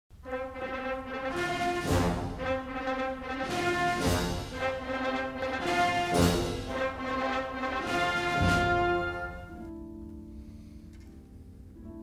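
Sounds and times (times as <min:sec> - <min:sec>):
brass sustained chords: 0:00.1 - 0:10.7
heavy accented orchestral strokes: 0:00.2 - 0:09.8.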